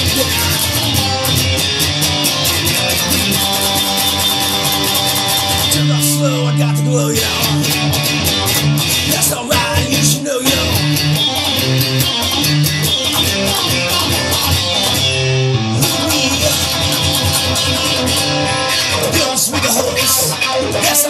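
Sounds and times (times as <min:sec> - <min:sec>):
steady drum beat: 0:00.0 - 0:05.8, 0:07.2 - 0:15.1, 0:15.8 - 0:19.8
bass: 0:00.0 - 0:21.0
guitars: 0:00.0 - 0:21.0.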